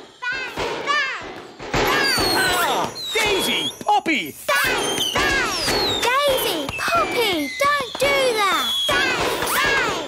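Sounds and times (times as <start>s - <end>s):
cartoon crashing and whacking: 0.2s - 3.6s, 8.9s - 10.0s.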